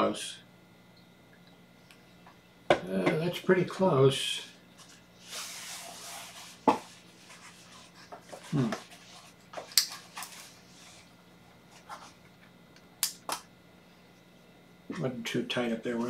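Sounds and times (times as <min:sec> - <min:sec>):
man saying hmm: 0:08.5 - 0:08.8.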